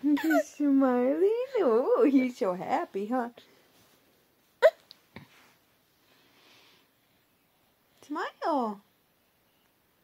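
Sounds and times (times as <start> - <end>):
baby hiccuping: 4.6 - 4.9.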